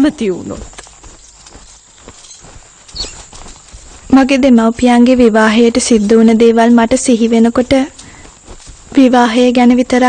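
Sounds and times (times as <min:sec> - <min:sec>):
faint clopping steps: 0:00.0 - 0:10.0
low background hiss: 0:00.0 - 0:10.0.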